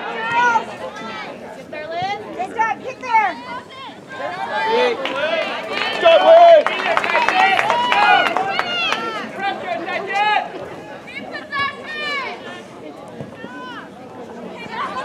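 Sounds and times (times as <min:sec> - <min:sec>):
crowd shouting and calling out: 0:00.0 - 0:15.0.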